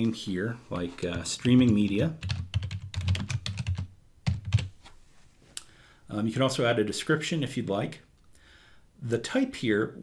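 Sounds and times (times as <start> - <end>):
keyboard typing: 1.4 - 4.7.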